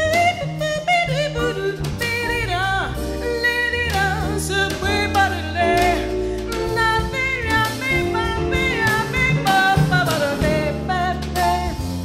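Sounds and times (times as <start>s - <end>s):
double bass: 0.0s - 12.0s
drum kit: 0.0s - 12.0s.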